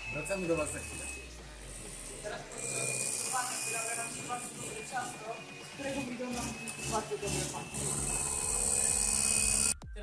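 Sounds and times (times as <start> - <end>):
electric hand mixer whisking batter: 1.7 - 9.8.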